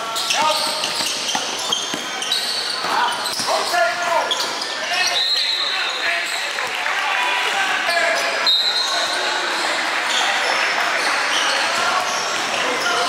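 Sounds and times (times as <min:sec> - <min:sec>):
sneakers squeaking: 0:00.0 - 0:06.5, 0:07.9 - 0:13.0
chatter and shouts of people: 0:00.0 - 0:13.0
basketball bouncing on court: 0:00.2 - 0:02.2.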